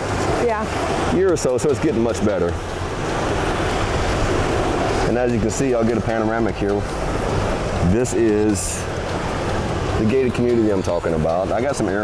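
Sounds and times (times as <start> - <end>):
ocean surf rushing: 0.0 - 12.0.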